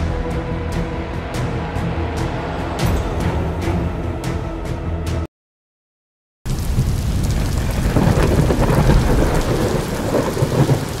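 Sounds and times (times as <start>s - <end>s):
rolling thunder: 6.5s - 11.0s
steady rain: 6.5s - 11.0s.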